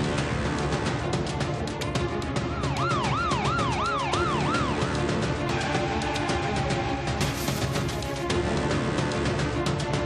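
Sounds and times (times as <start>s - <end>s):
dramatic music with steady beat: 0.0s - 10.0s
siren yelping: 2.7s - 4.9s.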